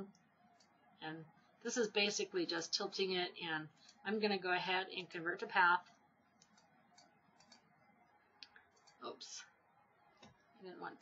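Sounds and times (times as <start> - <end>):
faint computer mouse clicks: 6.4 - 7.7, 8.4 - 9.0.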